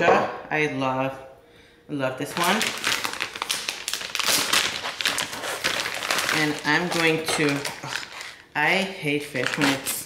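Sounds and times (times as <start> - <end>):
plastic packaging crinkling: 2.3 - 10.0.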